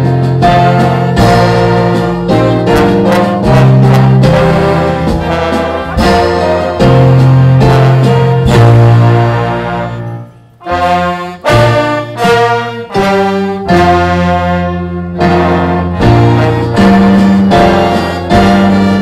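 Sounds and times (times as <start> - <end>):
jazz band horns playing an anthem: 0.0 - 19.0.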